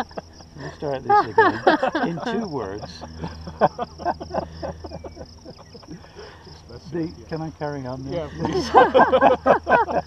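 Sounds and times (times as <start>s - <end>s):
men laughing: 0.0s - 7.2s, 8.1s - 10.0s
high-pitched insect buzz: 0.0s - 10.0s.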